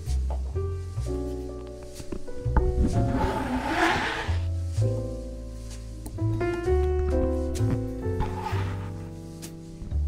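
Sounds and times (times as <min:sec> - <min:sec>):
background music: 0:00.0 - 0:10.0
blade scraping cutting board: 0:03.0 - 0:04.4.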